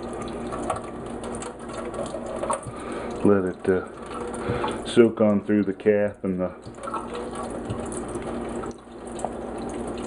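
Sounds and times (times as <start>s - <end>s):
water running into metal sink: 0.0s - 10.0s.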